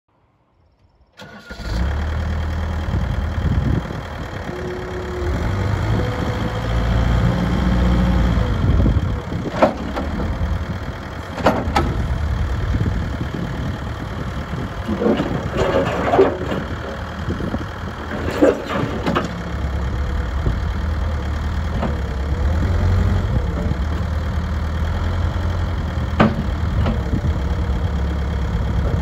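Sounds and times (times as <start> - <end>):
diesel engine running: 1.2 - 29.0
metal clunks: 9.4 - 10.4, 11.2 - 12.1, 18.1 - 19.5, 26.1 - 27.1.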